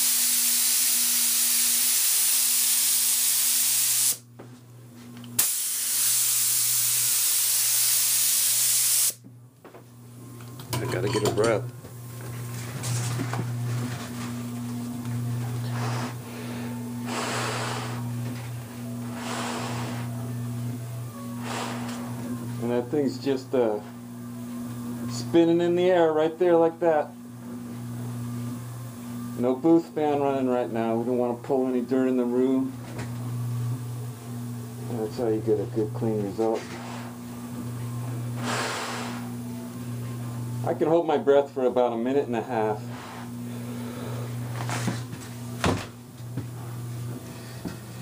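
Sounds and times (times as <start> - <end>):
spray gun hissing: 0.0 - 4.2, 5.4 - 9.2, 19.1 - 20.2
electric hum: 0.0 - 48.0.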